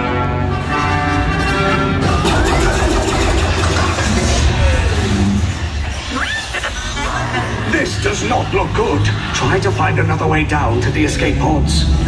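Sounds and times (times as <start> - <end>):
loud low rumble: 2.0 - 12.0.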